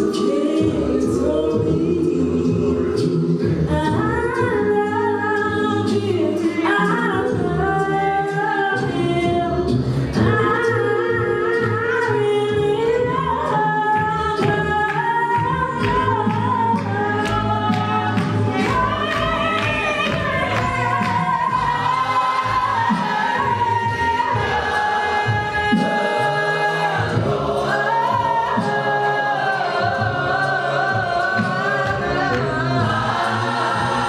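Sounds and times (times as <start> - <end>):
choir singing: 0.0 - 34.0
woman singing lead: 0.0 - 34.0.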